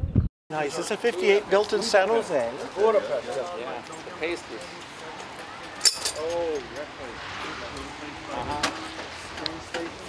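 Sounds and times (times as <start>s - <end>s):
low outdoor background noise: 0.5s - 10.0s.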